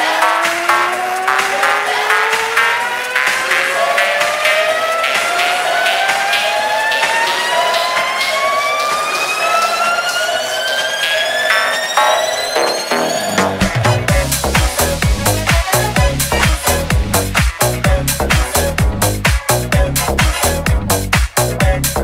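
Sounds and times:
synth sweep rising in pitch: 0:00.0 - 0:17.3
fast electronic percussion: 0:00.0 - 0:22.0.

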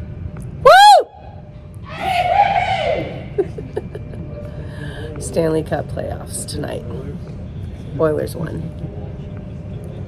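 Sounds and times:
person whooping: 0:00.6 - 0:03.5
person shrieking: 0:01.9 - 0:03.4.

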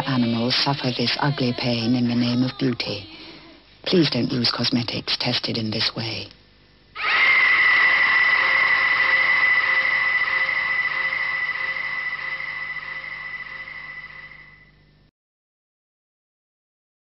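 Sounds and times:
woman screaming: 0:07.0 - 0:10.5.

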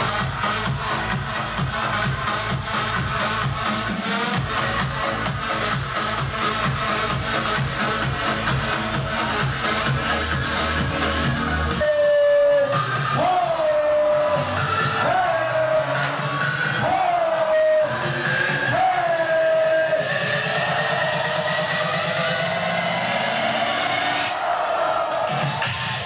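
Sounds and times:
loud electronic dance music: 0:00.0 - 0:26.0.

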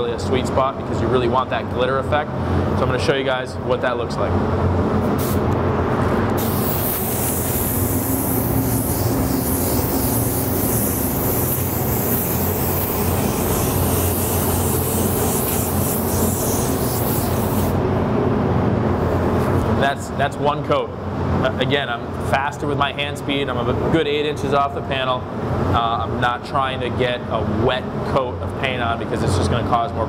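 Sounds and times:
steady low hum: 0:00.0 - 0:30.0
spray gun hissing: 0:06.4 - 0:17.8.

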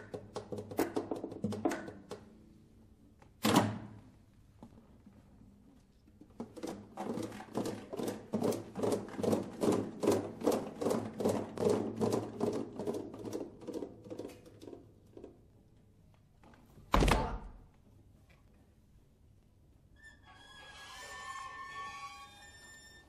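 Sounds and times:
guitars knocking percussively: 0:00.0 - 0:02.3, 0:06.4 - 0:15.4.

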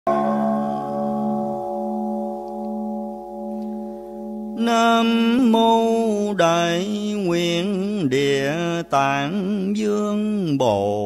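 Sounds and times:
bowl bell ringing: 0:00.1 - 0:06.4.

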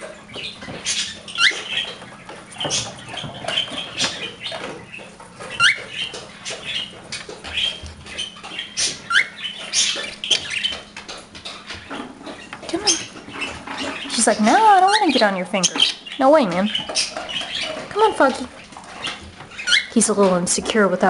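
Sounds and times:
birds chirping and chattering: 0:00.0 - 0:21.0.

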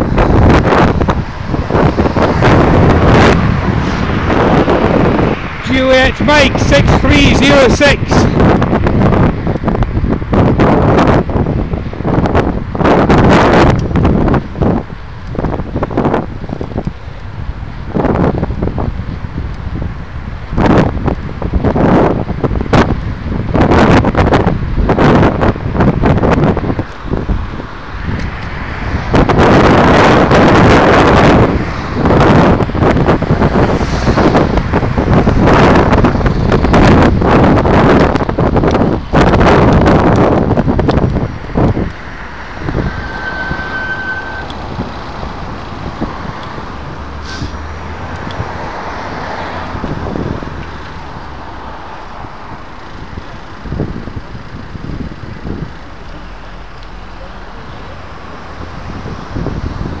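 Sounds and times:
motor traffic passing: 0:00.0 - 1:00.0
wind rushing over microphone: 0:00.0 - 1:00.0.

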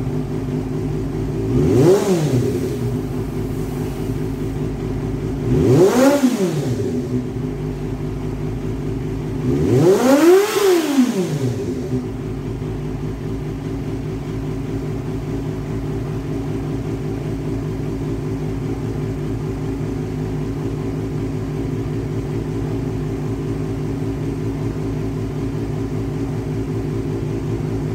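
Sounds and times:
motorcycle engine revving and idling: 0:00.0 - 0:27.9.

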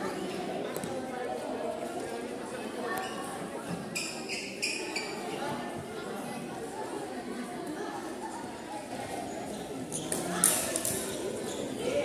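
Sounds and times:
background chatter: 0:00.0 - 0:12.0
sneakers squeaking on court floor: 0:11.1 - 0:11.8.

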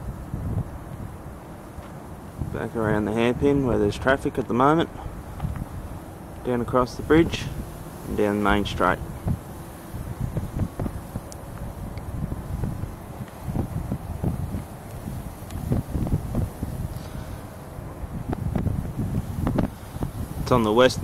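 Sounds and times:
wind gusts on microphone: 0:00.0 - 0:21.0.

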